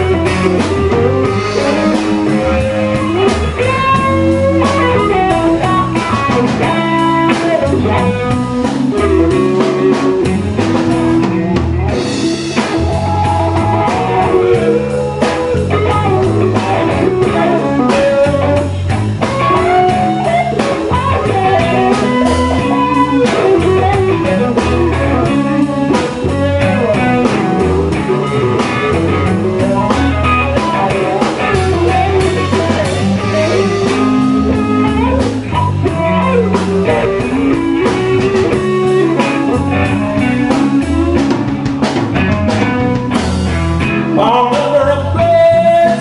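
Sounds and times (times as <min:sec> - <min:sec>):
drum kit: 0:00.0 - 0:46.0
electric bass: 0:00.0 - 0:46.0
electric guitars: 0:00.0 - 0:46.0.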